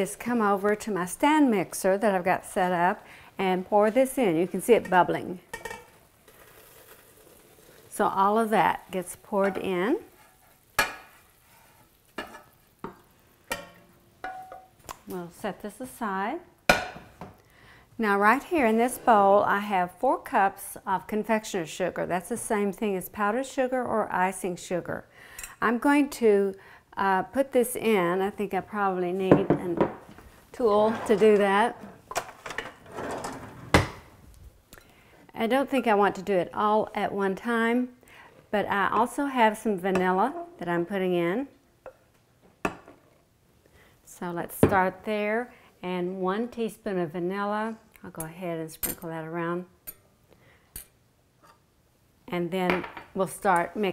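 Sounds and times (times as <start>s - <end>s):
syrup pouring into metal bowl: 6.2s - 8.0s.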